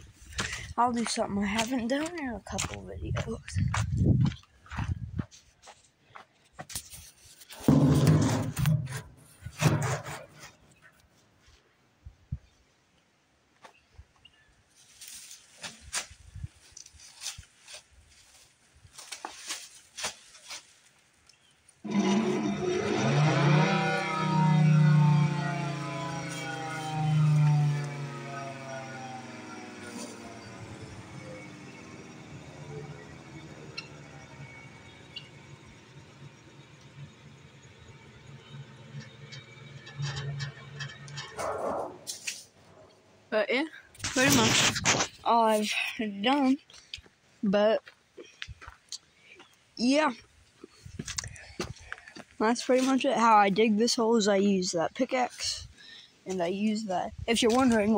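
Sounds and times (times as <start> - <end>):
rotating horn siren wailing: 21.9 - 42.1.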